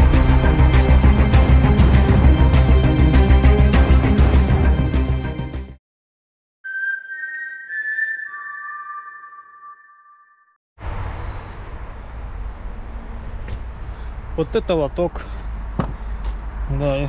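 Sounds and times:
whistle-like electronic tones: 6.6 - 10.6.

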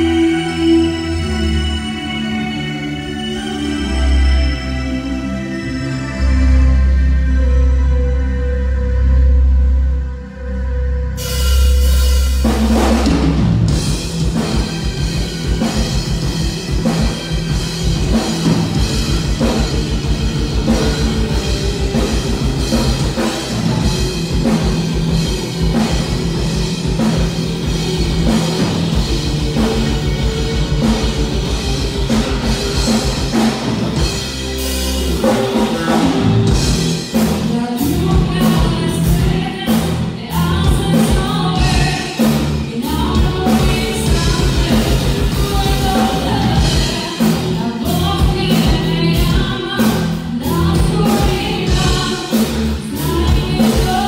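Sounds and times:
live rock band playing: 0.0 - 54.0
drums fast steady beat: 11.2 - 54.0.

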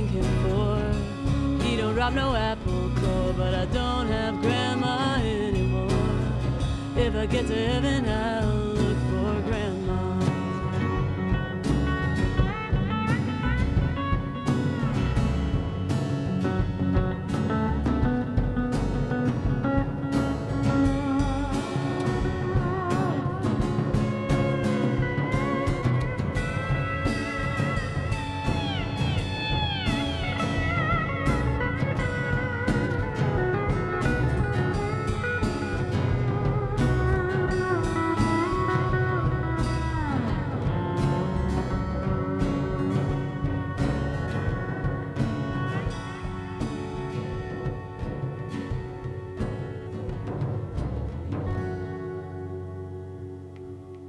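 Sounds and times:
live band playing: 0.0 - 54.0.

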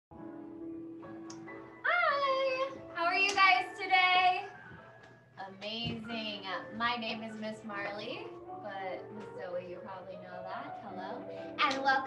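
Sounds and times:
faint music: 0.1 - 12.0.

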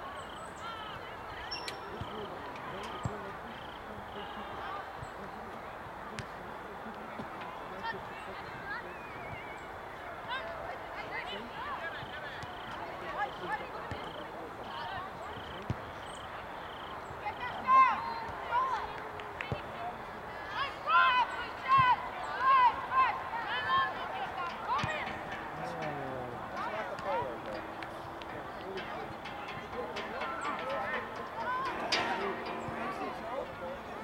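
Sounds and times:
outdoor background noise: 0.0 - 34.0
distant shouting of players: 14.8 - 34.0.

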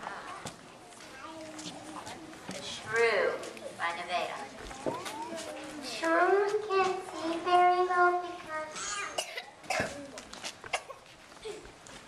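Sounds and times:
child speaking: 0.3 - 2.4, 4.4 - 10.2.

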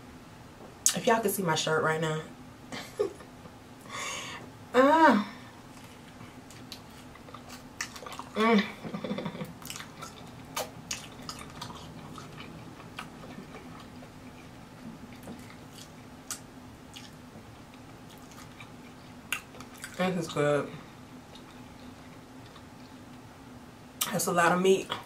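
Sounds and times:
short hummed vocal sound: 3.9 - 5.6, 8.2 - 10.7
biting and chewing: 5.7 - 8.4, 9.4 - 20.0, 21.3 - 23.2.

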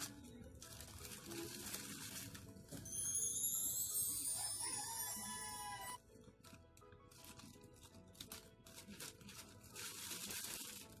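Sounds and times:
plastic packaging crinkling: 0.0 - 3.3, 6.3 - 11.0
background music: 0.0 - 11.0.

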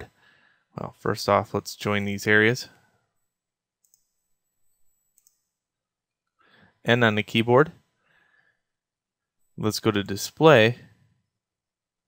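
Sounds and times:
man's voice: 0.8 - 2.8, 6.9 - 7.7, 9.6 - 10.8
computer mouse clicks: 3.8 - 5.5.

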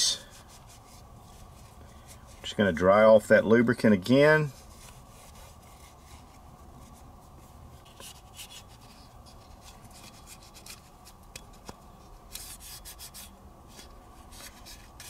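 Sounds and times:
cloth patch rubbing metal: 0.0 - 2.7, 4.2 - 11.6, 12.3 - 15.0.

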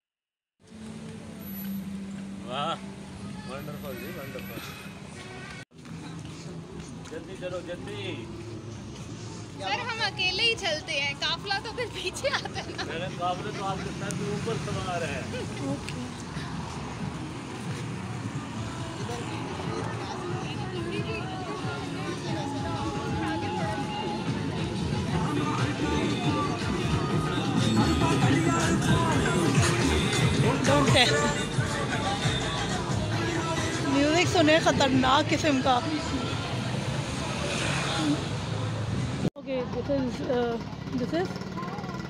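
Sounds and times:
road rumble: 0.6 - 42.0
car driving past: 36.2 - 38.8.

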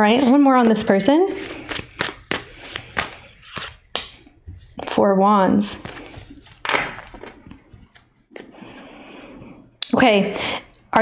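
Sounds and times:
cards clicking and tapping on table: 1.7 - 4.2.

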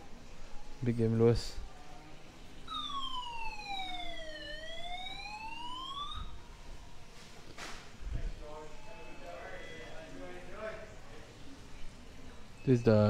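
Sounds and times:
electronic siren-like tone: 2.7 - 6.6.

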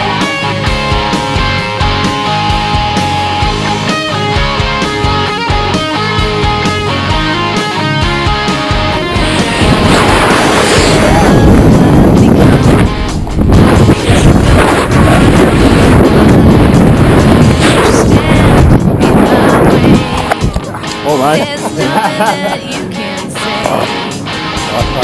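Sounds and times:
faint rock music: 0.0 - 25.0
wind buffeting microphone: 8.8 - 21.6.

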